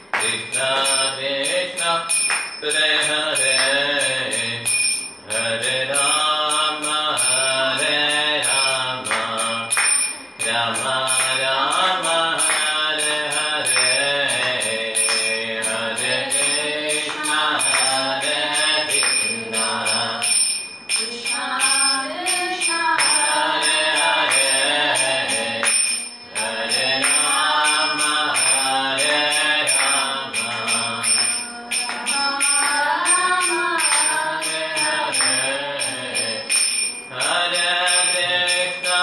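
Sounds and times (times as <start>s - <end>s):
small hand cymbals beat: 0.0s - 39.0s.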